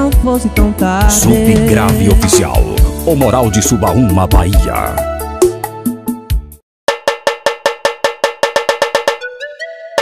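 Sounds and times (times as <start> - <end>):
cowbell-like percussion roll: 6.9 - 9.2.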